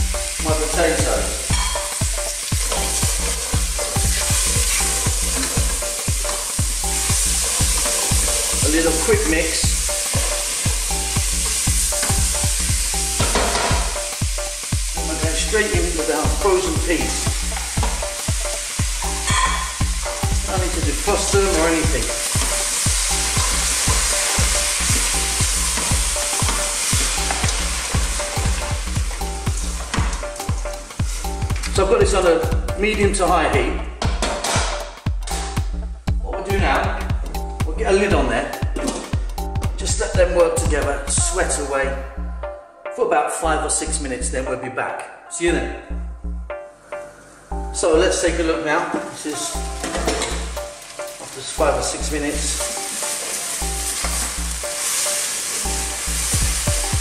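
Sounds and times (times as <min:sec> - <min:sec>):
food sizzling in a pot: 0:00.0 - 0:32.6, 0:48.9 - 0:57.0
wooden spoon stirring vegetables: 0:01.8 - 0:12.2, 0:20.8 - 0:31.8, 0:48.8 - 0:56.6
wooden spoon scraping a pot: 0:02.5 - 0:05.8.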